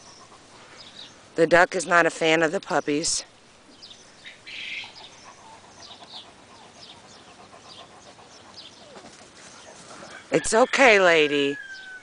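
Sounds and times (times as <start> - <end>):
birds chirping faintly: 0.0 - 12.0.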